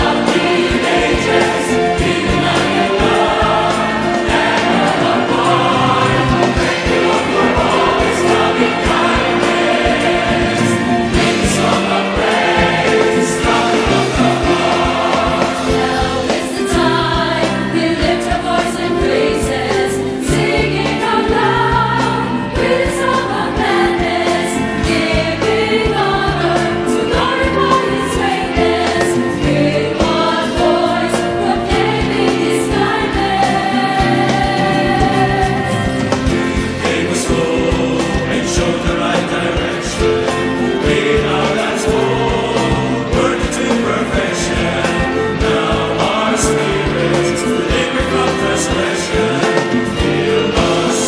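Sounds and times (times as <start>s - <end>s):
choir singing a hymn: 0.0s - 51.0s
instrumental accompaniment: 0.0s - 51.0s.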